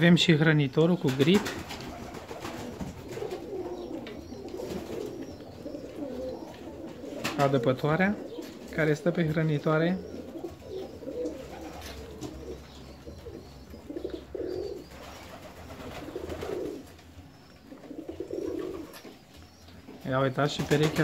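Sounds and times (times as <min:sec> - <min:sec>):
pigeons cooing: 0:01.0 - 0:21.0.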